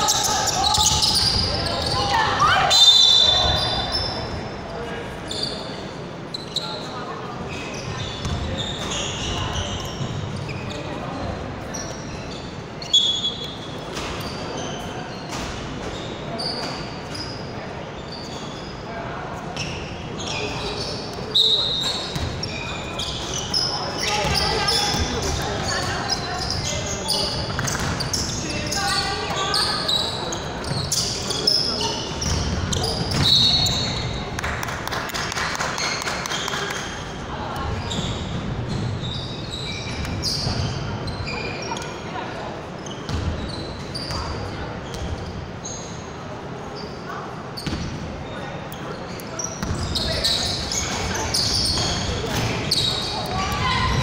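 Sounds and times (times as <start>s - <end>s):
sneakers squeaking: 0.0s - 34.8s, 35.7s - 54.0s.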